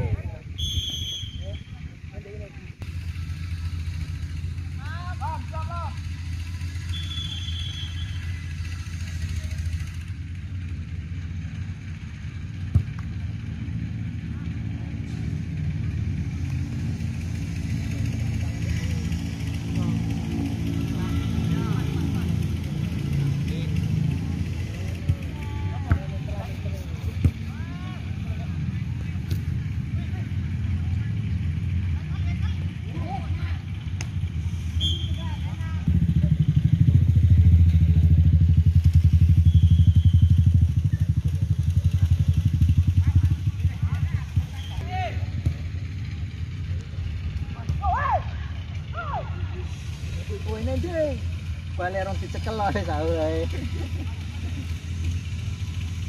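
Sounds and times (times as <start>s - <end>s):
engine droning: 0.0s - 56.0s
distant players shouting: 4.3s - 9.8s, 18.6s - 31.2s, 43.0s - 51.2s.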